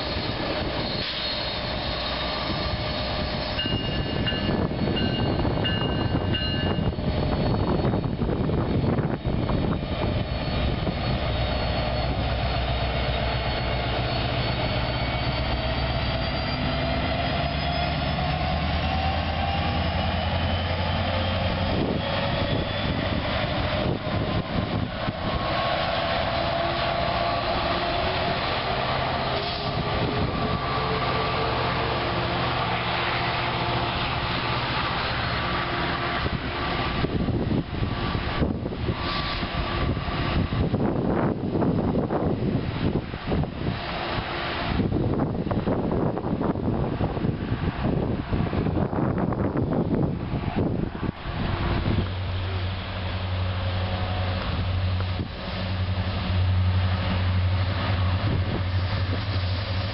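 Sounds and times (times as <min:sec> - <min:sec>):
diesel locomotive engine drone: 0:00.0 - 0:59.9
train wheels on rails: 0:00.0 - 0:59.9.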